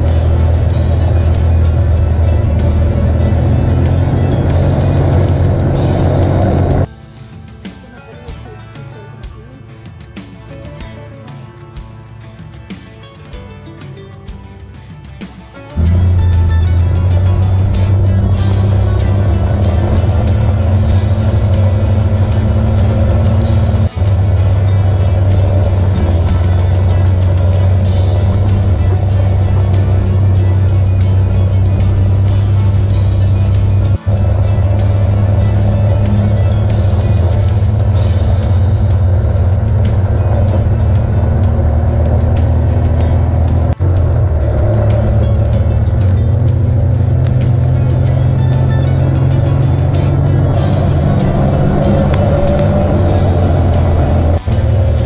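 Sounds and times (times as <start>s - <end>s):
snowmobile engine droning: 0.0s - 6.9s, 15.8s - 55.0s
music: 0.0s - 55.0s.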